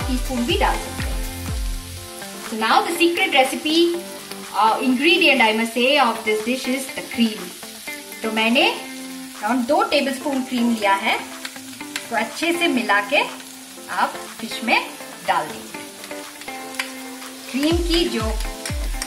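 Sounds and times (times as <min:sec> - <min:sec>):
deep drum beat: 0:00.0 - 0:02.0, 0:17.7 - 0:19.0
background music: 0:00.0 - 0:19.0
gravy sizzling in a frying pan: 0:00.0 - 0:19.0.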